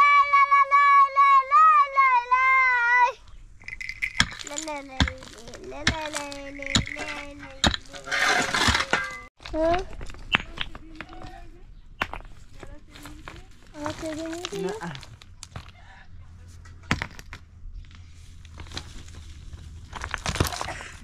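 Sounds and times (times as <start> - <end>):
small child's soft voice: 0.0 - 3.2, 13.7 - 14.9.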